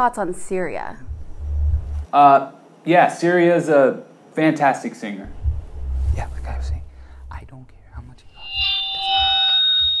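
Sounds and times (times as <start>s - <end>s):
low rumble: 0.4s - 2.1s, 5.3s - 8.5s
sustained electronic chord tone: 8.0s - 10.0s.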